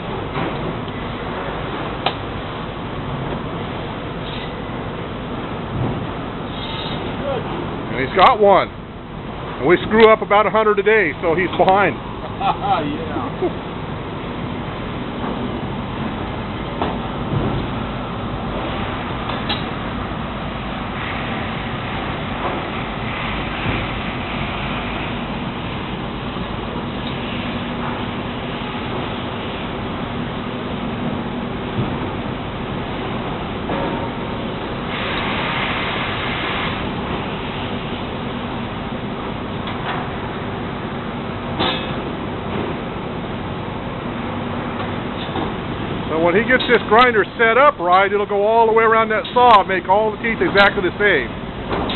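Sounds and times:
sawmill machinery running: 0:00.0 - 0:51.9.

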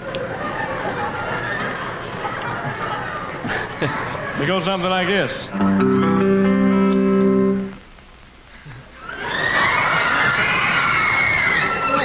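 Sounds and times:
audience screaming: 0:00.2 - 0:05.5, 0:09.0 - 0:12.0.

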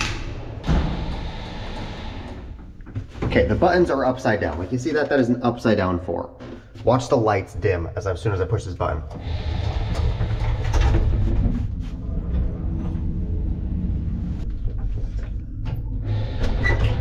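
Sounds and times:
elevator doors opening: 0:00.0 - 0:03.6, 0:09.1 - 0:17.0
elevator rumbling: 0:00.0 - 0:04.4, 0:09.1 - 0:17.0.

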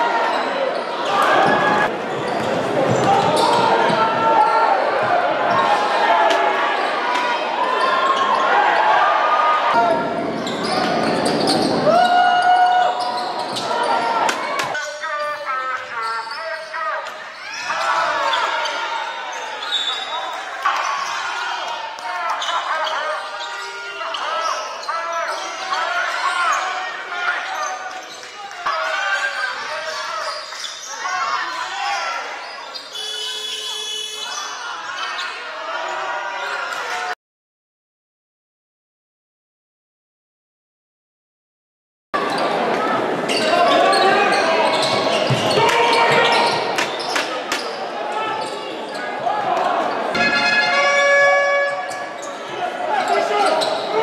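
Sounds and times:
voices echoing in hall: 0:00.0 - 0:37.2, 0:42.2 - 0:54.0
sneaker squeaks: 0:00.3 - 0:03.9, 0:10.2 - 0:11.8, 0:12.8 - 0:36.5, 0:43.3 - 0:54.0
basketball bouncing on court: 0:02.3 - 0:04.2, 0:44.8 - 0:46.6.

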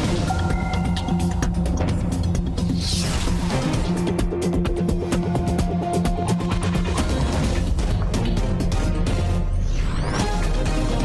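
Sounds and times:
news theme music with heavy bass: 0:00.0 - 0:11.0.

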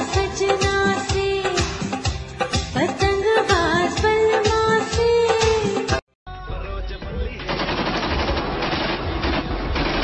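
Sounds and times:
rapid crackling pops: 0:07.4 - 0:10.0.

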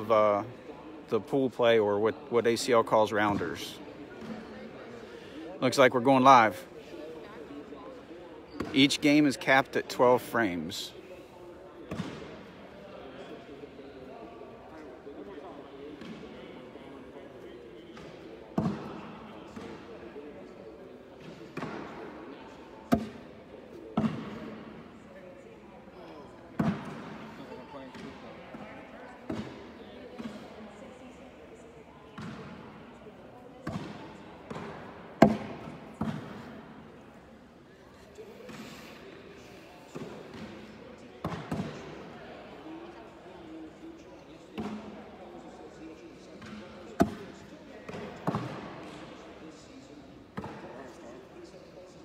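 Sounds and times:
background chatter: 0:00.0 - 0:52.0.

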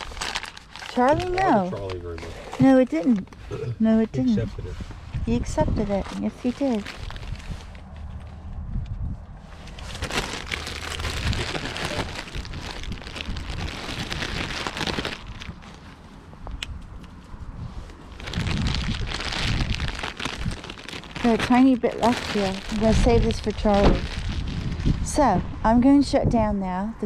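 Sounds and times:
plastic bag rustling: 0:00.0 - 0:03.1, 0:05.4 - 0:08.3, 0:09.5 - 0:16.0, 0:18.0 - 0:25.1
low steady rumble: 0:00.0 - 0:27.0.

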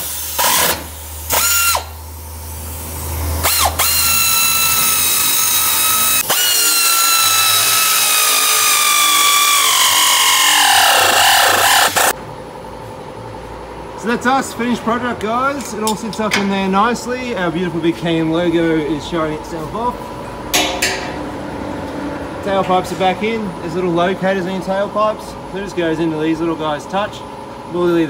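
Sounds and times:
power ratchet whining: 0:00.0 - 0:02.0, 0:03.4 - 0:12.2.

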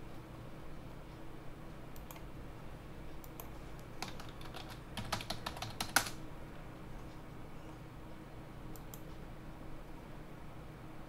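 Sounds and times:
computer keyboard typing: 0:03.2 - 0:06.2.

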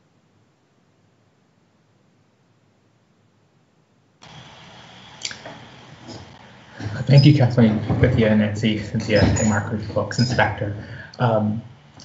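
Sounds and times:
background hiss with low hum: 0:00.0 - 0:12.0.

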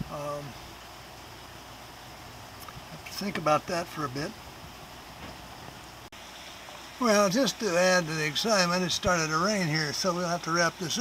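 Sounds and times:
water hissing: 0:00.0 - 0:11.0.

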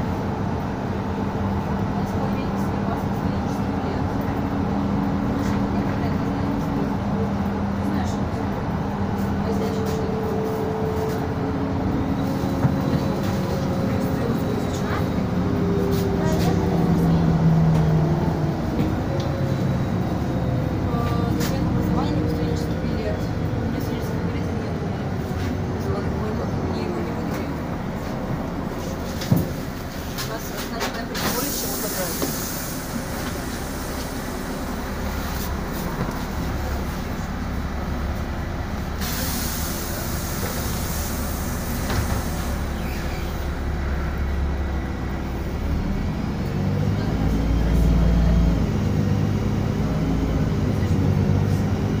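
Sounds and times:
bus engine and road rumble: 0:00.0 - 0:52.0.

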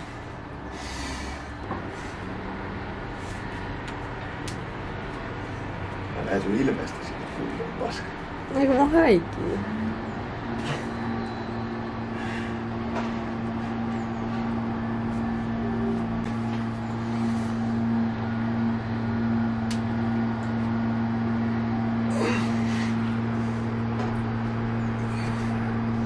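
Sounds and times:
low mechanical hum: 0:00.0 - 0:26.0.

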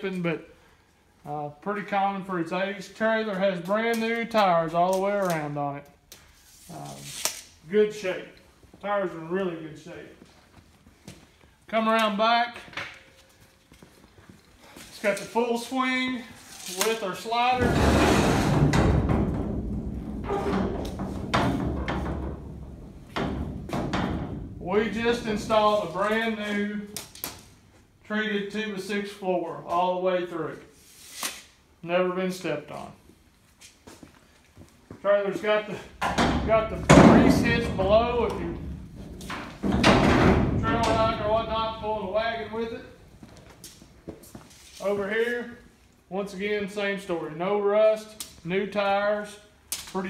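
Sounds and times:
man talking: 0:01.2 - 0:05.9, 0:06.7 - 0:10.2, 0:11.7 - 0:12.7, 0:14.9 - 0:18.0, 0:24.6 - 0:27.0, 0:28.0 - 0:30.7, 0:31.8 - 0:33.0, 0:35.0 - 0:38.8, 0:40.2 - 0:43.0, 0:44.8 - 0:50.0
bang against steel trailer: 0:17.6 - 0:24.6, 0:36.1 - 0:42.5
metal clanks and knocks: 0:17.6 - 0:25.9, 0:35.9 - 0:43.0
metal gate rattling and rumbling: 0:17.6 - 0:26.0, 0:36.0 - 0:43.1.

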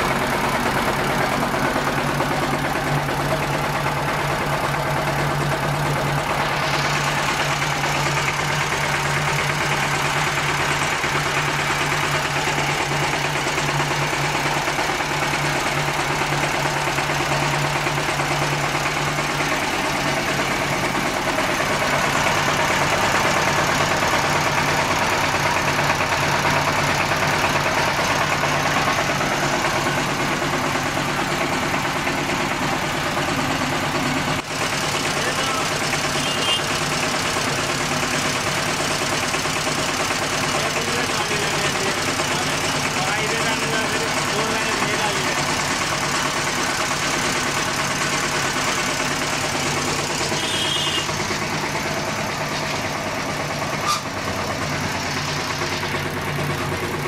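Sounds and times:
diesel tractor engine idling: 0:00.0 - 0:57.0.

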